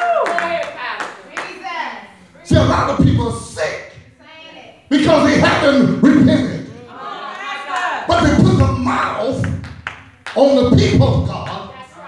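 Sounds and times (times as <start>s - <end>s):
congregation voices calling out: 0.0s - 9.6s
scattered hand claps: 9.4s - 11.6s.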